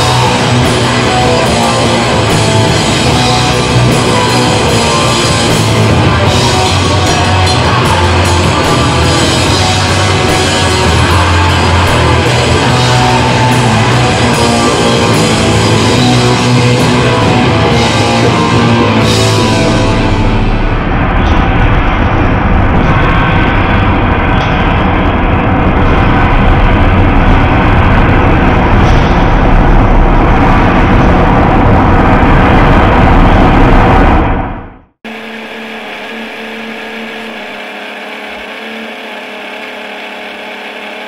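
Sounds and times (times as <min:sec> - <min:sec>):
live metal band playing: 0:00.0 - 0:34.3.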